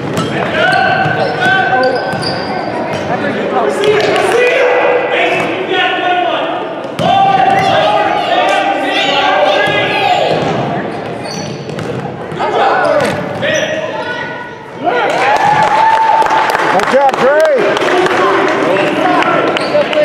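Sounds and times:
basketball bouncing: 0.0s - 3.1s, 9.6s - 13.4s
sneaker squeaks on hardwood: 0.0s - 3.2s, 10.3s - 13.8s
spectators shouting: 4.0s - 10.5s.

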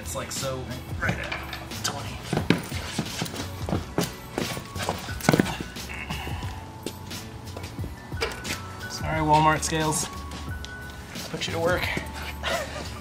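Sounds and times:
background music: 0.0s - 13.0s.

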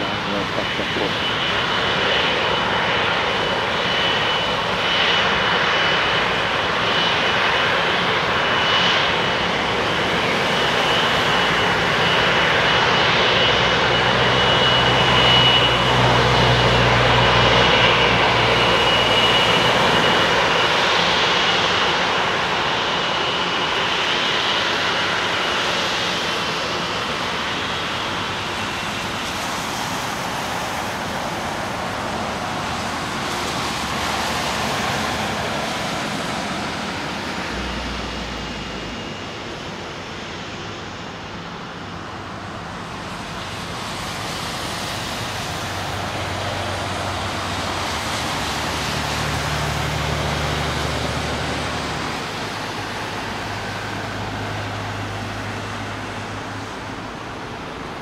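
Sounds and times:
jet engines roaring with whine: 0.0s - 58.0s.

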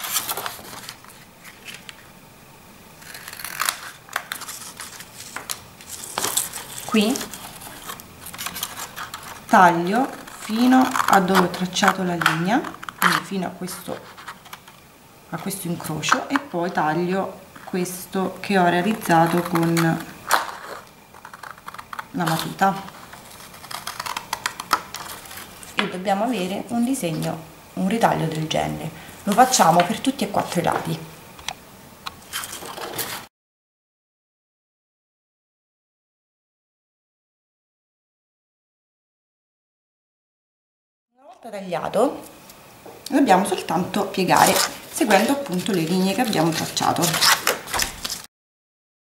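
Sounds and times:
paper crinkling as folded: 0.0s - 2.1s, 3.0s - 14.8s, 18.8s - 27.4s, 32.2s - 33.3s, 43.5s - 48.3s
paper card being cut: 3.0s - 9.4s, 18.9s - 25.8s.

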